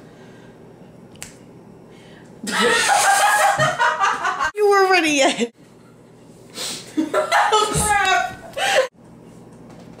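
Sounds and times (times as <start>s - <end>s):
people laughing: 2.4s - 4.5s.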